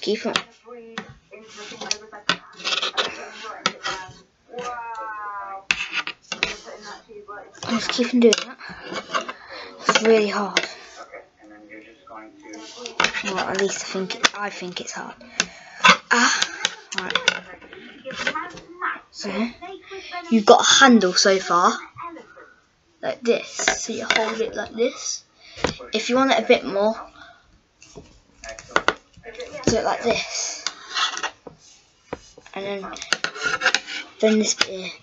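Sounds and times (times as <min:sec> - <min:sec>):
wire clicking and scraping: 0:30.4 - 0:35.0.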